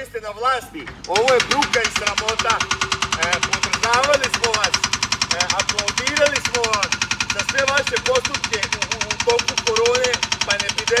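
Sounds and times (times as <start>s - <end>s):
man talking: 0.0s - 2.6s, 3.2s - 11.0s
diesel engine idling: 0.0s - 11.0s.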